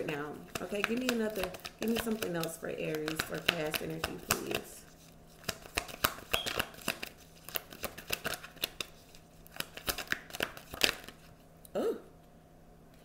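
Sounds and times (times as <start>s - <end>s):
cards being shuffled by hand: 0.0s - 11.4s.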